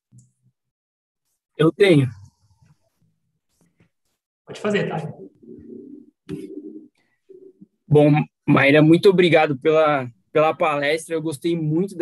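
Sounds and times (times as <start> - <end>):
low cooing: 5.2 - 7.6.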